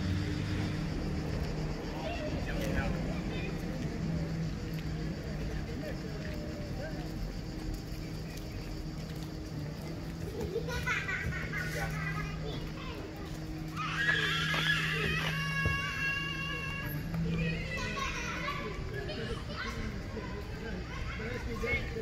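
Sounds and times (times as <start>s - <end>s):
children calling and shrieking: 0.0s - 22.0s.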